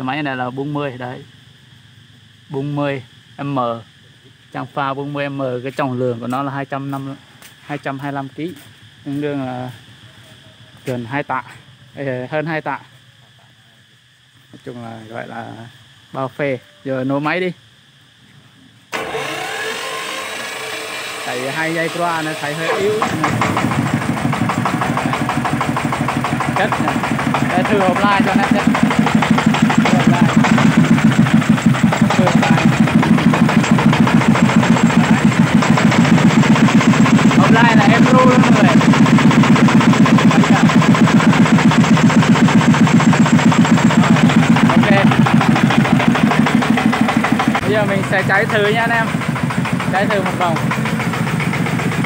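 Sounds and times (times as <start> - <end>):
diesel engine starting and idling: 18.9 - 52.0.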